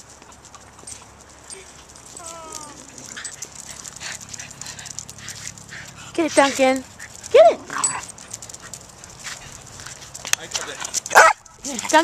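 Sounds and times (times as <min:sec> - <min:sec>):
small dog barking: 0:11.1 - 0:11.4.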